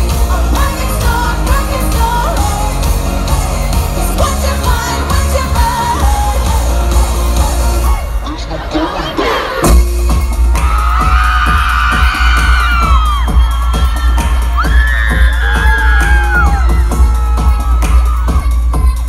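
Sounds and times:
heavy bass beat: 0:00.0 - 0:08.8, 0:09.6 - 0:19.0
crowd cheering and screaming: 0:00.0 - 0:19.0.

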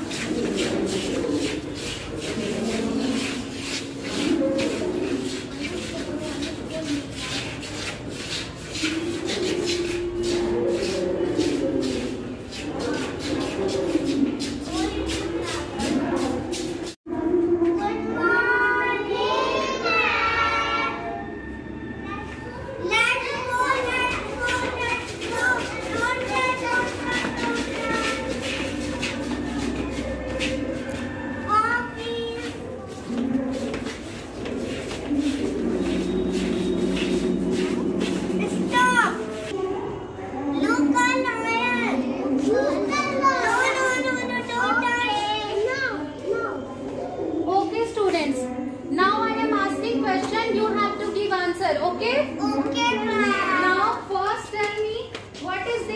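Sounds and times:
young children talking and calling: 0:00.0 - 0:55.9
children singing in unison: 0:17.7 - 0:21.3.

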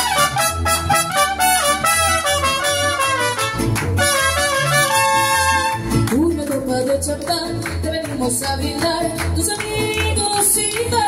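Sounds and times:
trumpets playing melody: 0:00.0 - 0:06.0.

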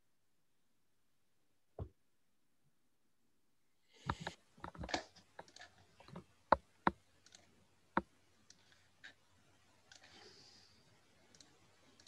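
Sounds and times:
computer mouse clicks: 0:04.0 - 0:09.2, 0:11.2 - 0:12.0.

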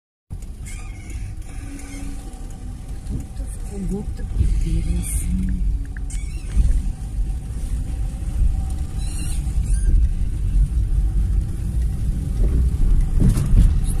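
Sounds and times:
road traffic on wet street: 0:00.3 - 0:14.0.

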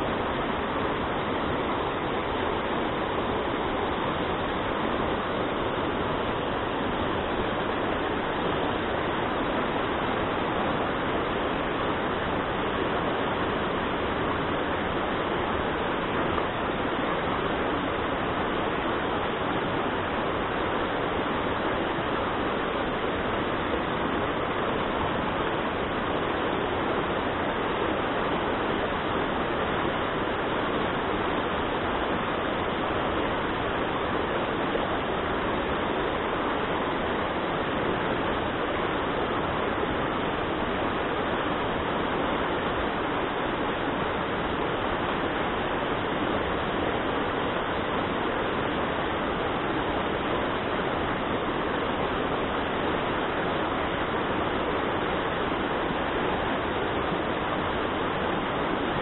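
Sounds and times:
stream rushing over stones: 0:00.0 - 0:59.0.

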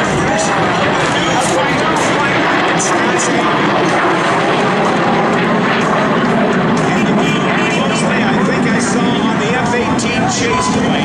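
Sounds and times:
jet aircraft roaring past: 0:00.0 - 0:11.0.

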